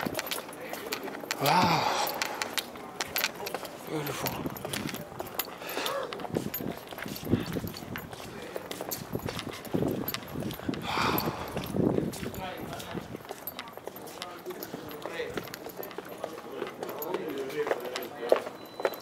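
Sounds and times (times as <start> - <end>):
people talking: 0.0 - 10.2, 10.9 - 18.9
footsteps: 0.0 - 19.0
outdoor background noise: 0.0 - 19.0.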